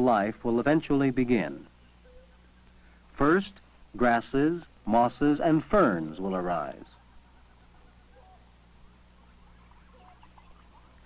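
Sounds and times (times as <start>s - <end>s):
low steady hum: 0.0s - 11.0s
small animals chirping: 1.8s - 2.8s, 6.2s - 11.0s.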